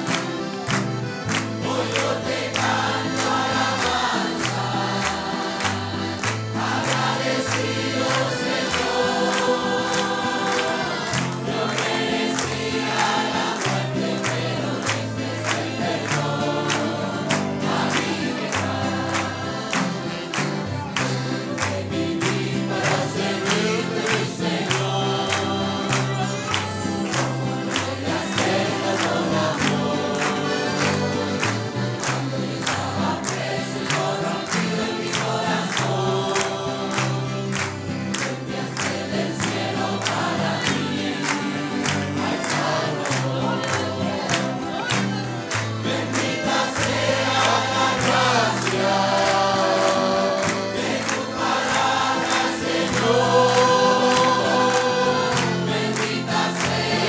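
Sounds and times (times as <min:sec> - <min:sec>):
congregation singing a hymn: 0:00.0 - 0:57.0
instrumental accompaniment: 0:00.0 - 0:57.0.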